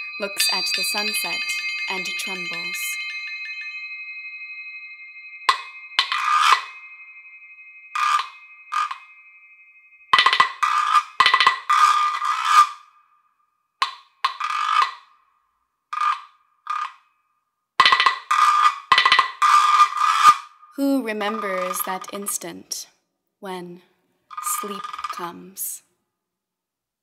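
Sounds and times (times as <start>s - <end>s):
faint ringing tone: 0.0s - 13.4s
high crotale tones: 0.0s - 15.3s, 18.0s - 22.6s, 23.4s - 25.8s.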